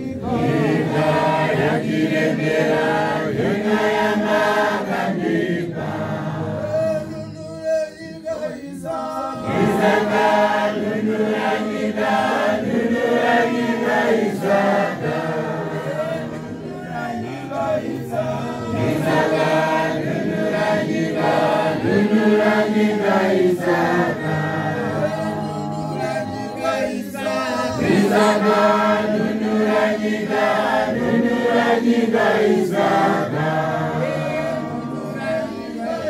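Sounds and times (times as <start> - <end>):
choir singing a hymn: 0.0 - 7.2, 8.5 - 36.0.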